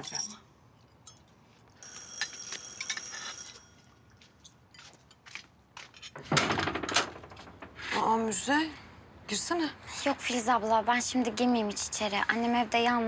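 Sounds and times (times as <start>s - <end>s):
electric doorbell ringing: 1.8s - 3.9s
door opening with a rattle: 6.1s - 7.9s.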